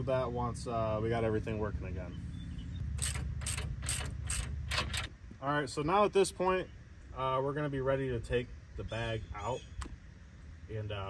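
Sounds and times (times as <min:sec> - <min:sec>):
ratchet wrench clicking: 0:03.0 - 0:05.1.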